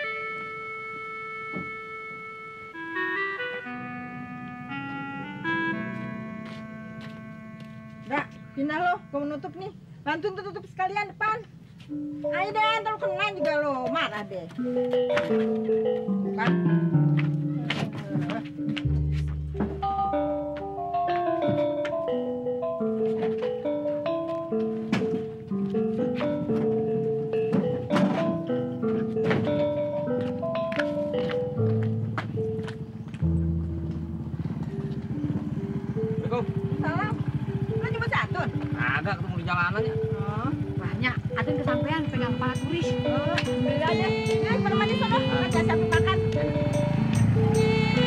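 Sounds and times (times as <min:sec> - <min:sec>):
background music: 0:00.0 - 0:48.0
motorcycle engine puttering: 0:22.8 - 0:48.0
chiming notes tune: 0:26.7 - 0:48.0
woman calling out: 0:39.9 - 0:46.6.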